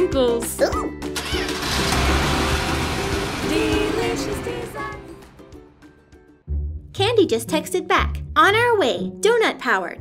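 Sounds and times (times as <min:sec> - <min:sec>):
background music: 0:00.0 - 0:10.0
engine rumble with whoosh: 0:01.6 - 0:05.5.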